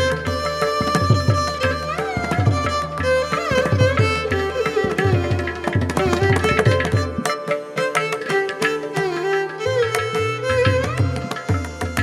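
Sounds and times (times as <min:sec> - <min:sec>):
violin melody with sliding notes: 0:00.0 - 0:12.0.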